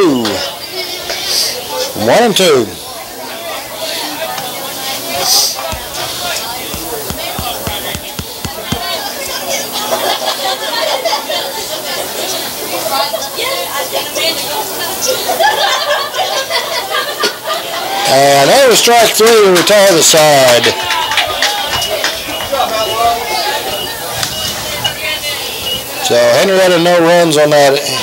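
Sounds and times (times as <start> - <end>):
sharp knocks: 5.7 - 9.0.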